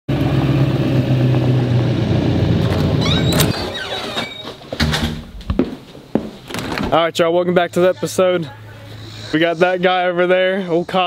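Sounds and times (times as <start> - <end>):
pickup truck driving past: 0.1 - 3.5
brief high squeaks: 3.0 - 4.6.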